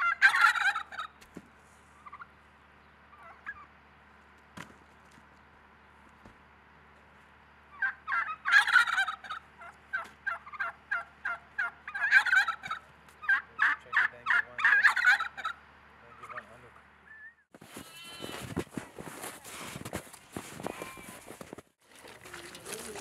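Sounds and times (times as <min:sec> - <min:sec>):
fowl calling rapidly: 0:00.0 - 0:01.2, 0:02.0 - 0:02.3, 0:03.1 - 0:03.7, 0:07.7 - 0:18.4
footsteps crunching through snow: 0:17.5 - 0:23.0.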